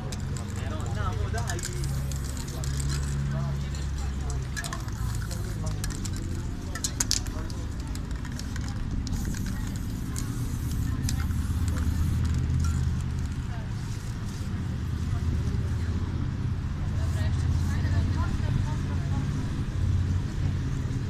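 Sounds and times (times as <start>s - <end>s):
street noise rumble: 0.0s - 21.0s.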